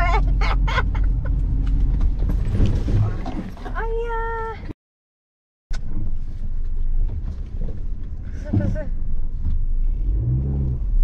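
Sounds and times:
car engine and road noise: 0:00.0 - 0:04.7, 0:05.7 - 0:11.0.

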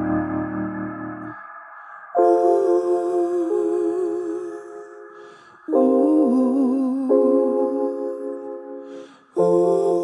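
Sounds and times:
digital piano chords: 0:00.0 - 0:10.0.

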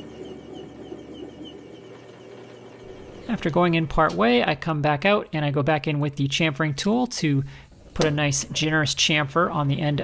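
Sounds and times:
lathe cutting metal: 0:00.0 - 0:04.1.

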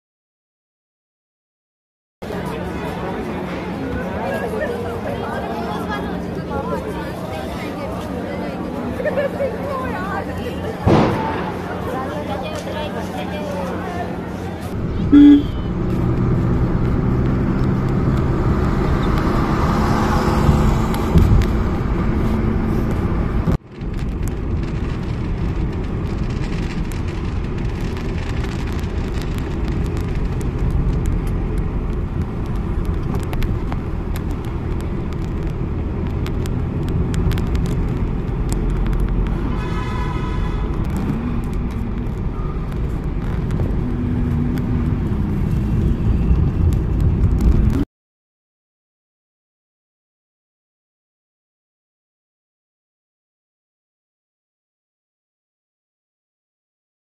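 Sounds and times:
car engine and tyre rumble: 0:02.2 - 0:47.8
short pitched sound: 0:14.8 - 0:15.9.

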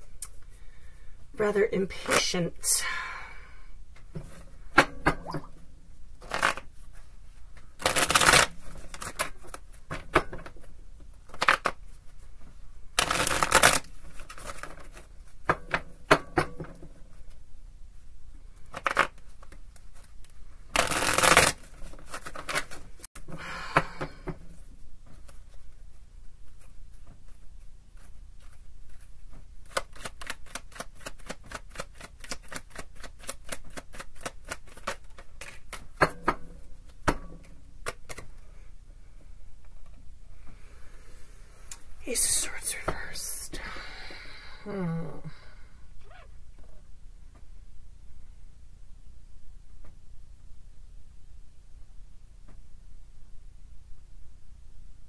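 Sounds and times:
cards being shuffled: 0:06.2 - 0:07.0, 0:11.2 - 0:12.2, 0:13.0 - 0:15.1, 0:18.7 - 0:22.9, 0:26.5 - 0:36.0.

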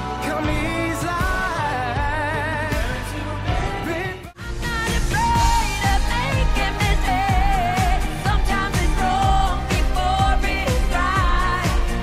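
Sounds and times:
woman singing: 0:00.2 - 0:12.0
electronic beat and bass: 0:00.3 - 0:12.0.

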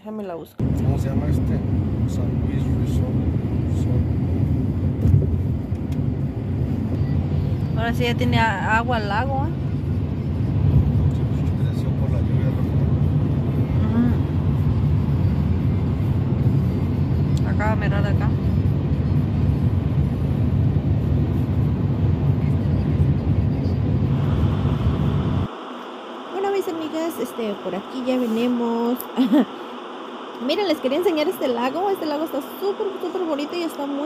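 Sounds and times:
car road and engine noise: 0:00.3 - 0:34.0.

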